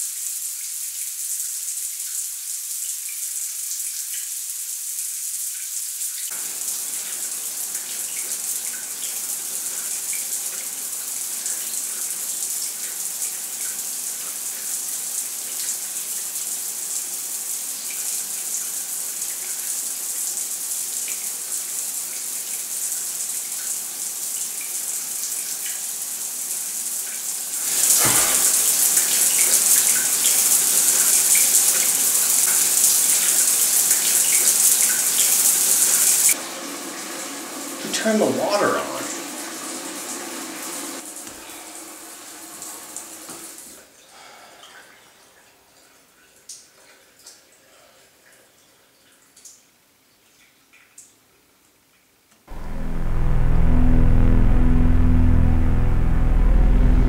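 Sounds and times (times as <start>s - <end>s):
shower spray running: 27.6s - 32.8s
brief thud: 28.0s - 28.8s.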